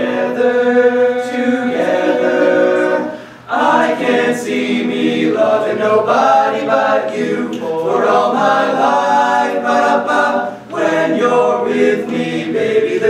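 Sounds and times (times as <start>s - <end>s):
boys singing in harmony: 0.0s - 13.0s.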